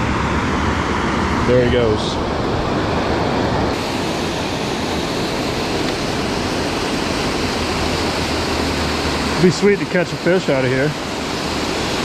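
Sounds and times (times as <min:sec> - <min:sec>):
water rushing over a dam: 0:03.8 - 0:12.0.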